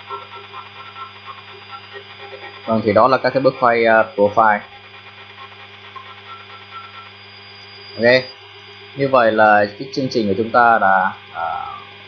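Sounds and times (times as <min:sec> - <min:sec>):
faint high whine: 0:00.0 - 0:12.0
steady machine hum: 0:00.0 - 0:12.0.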